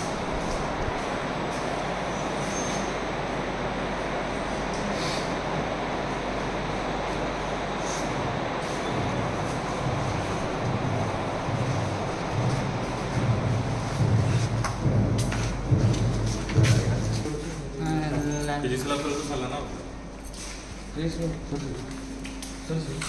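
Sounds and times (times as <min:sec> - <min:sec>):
steady rushing noise: 0:05.5 - 0:17.2.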